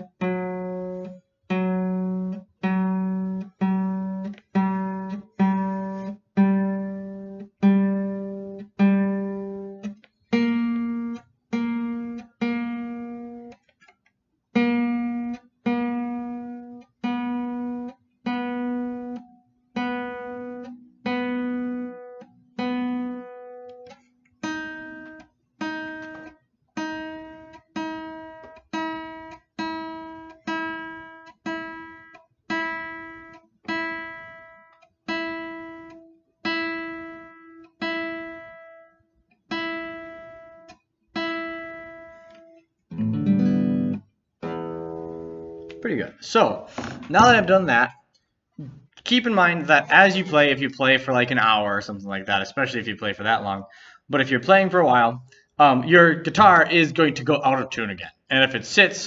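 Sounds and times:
guitar string plucked: 0:00.0 - 0:14.0, 0:14.6 - 0:38.9, 0:39.5 - 0:48.0.

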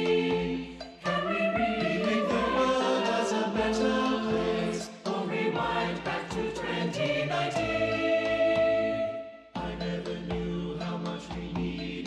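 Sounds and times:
youth choir singing held chords: 0:00.0 - 0:12.0.

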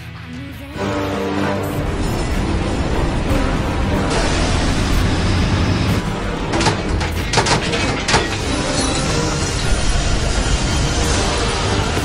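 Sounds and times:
heavy machinery rumbling: 0:01.5 - 0:12.0.

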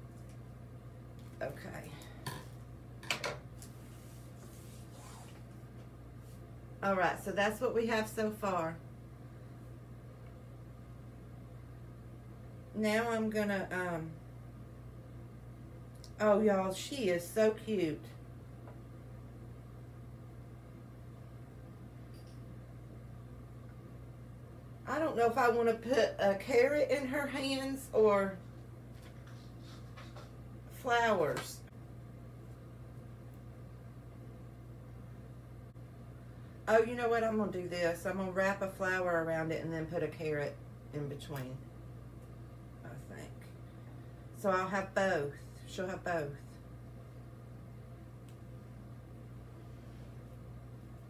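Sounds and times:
steady low hum: 0:00.0 - 0:51.0
woman speaking: 0:01.4 - 0:02.2, 0:06.8 - 0:08.8, 0:12.7 - 0:14.2, 0:16.1 - 0:18.2, 0:24.8 - 0:28.5, 0:30.7 - 0:31.7, 0:36.6 - 0:41.7, 0:42.8 - 0:43.6, 0:44.4 - 0:46.6
soft rustling and handling: 0:03.6 - 0:06.5, 0:28.4 - 0:30.4.

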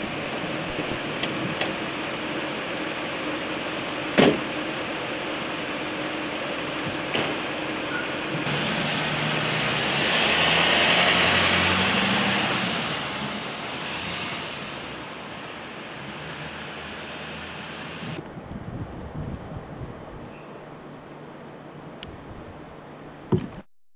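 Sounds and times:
vehicle passing: 0:08.5 - 0:18.2.

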